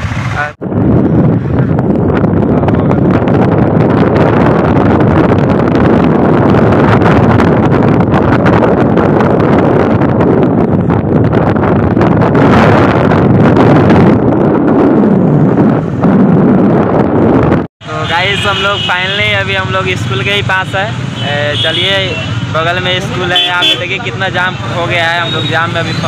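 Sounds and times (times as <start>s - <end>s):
road noise: 0.0s - 26.0s
wind rushing over microphone: 0.0s - 26.0s.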